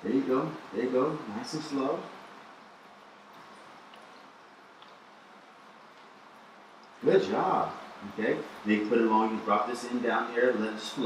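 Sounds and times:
faint small ticks: 3.0 - 5.1.

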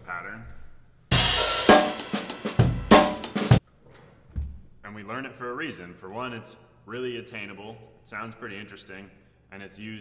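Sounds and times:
drum kit playing a groove: 1.1 - 3.6.

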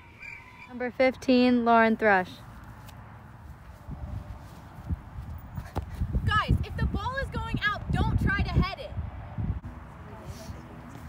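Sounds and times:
wind rumbling on microphone: 3.4 - 11.0.

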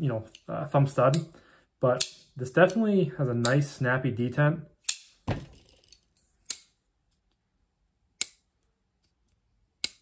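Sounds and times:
folding knife metallic clicks: 6.4 - 6.8.

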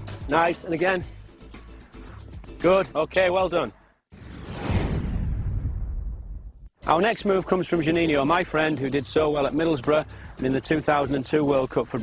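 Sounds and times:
swoosh with deep rumble: 4.1 - 6.7.

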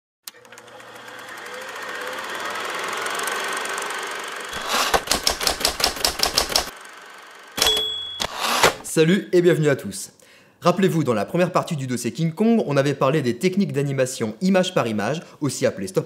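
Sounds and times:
typewriter keystrokes: 4.6 - 6.7, 7.6 - 8.9
high bell-like ding: 7.6 - 8.4.

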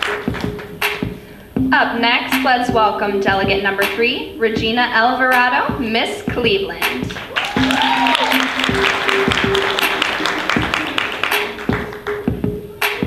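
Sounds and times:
walk-on music with steady beat: 0.0 - 13.0
audience applause: 7.1 - 12.4.

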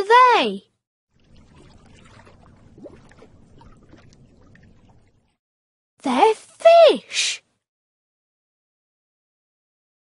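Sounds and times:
pouring bubbling water: 1.2 - 5.4.

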